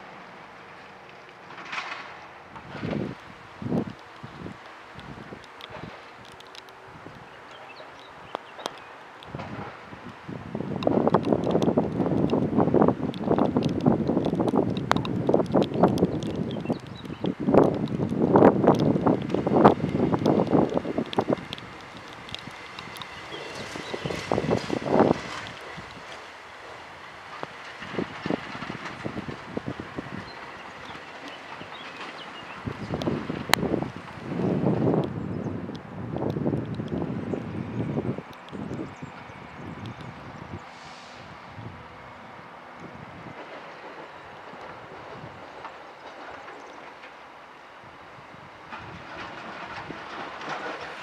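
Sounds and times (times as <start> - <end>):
diesel railcar passing: 0.0 - 51.0
wind buffeting microphone: 1.7 - 47.0, 47.8 - 51.0.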